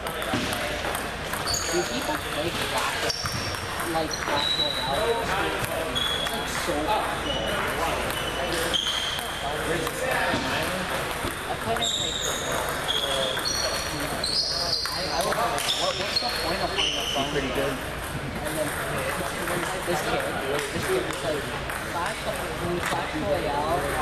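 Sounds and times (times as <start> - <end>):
table tennis balls clicking: 0.0 - 16.6, 17.8 - 23.0
murmur of voices: 0.0 - 24.0
shoes squeaking on wooden floor: 1.3 - 6.6, 7.3 - 9.3, 11.2 - 17.4.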